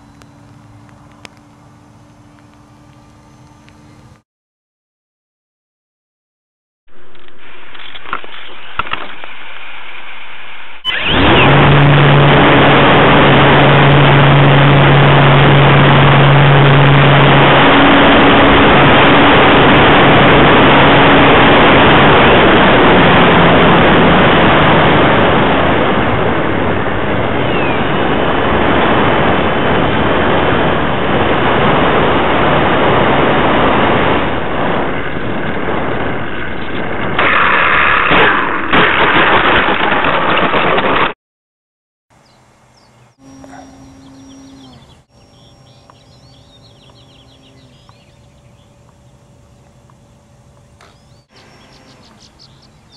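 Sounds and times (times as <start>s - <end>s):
electric motor hum: 0.0s - 4.2s, 10.9s - 36.8s, 42.2s - 52.9s
propeller noise: 0.0s - 4.2s, 10.8s - 39.3s, 42.1s - 52.9s.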